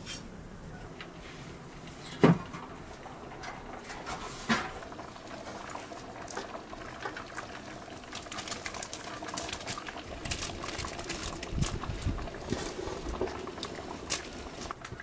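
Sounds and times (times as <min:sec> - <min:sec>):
pot of soup boiling and bubbling: 0:01.8 - 0:15.0
wood fire crackling and popping: 0:01.8 - 0:15.0.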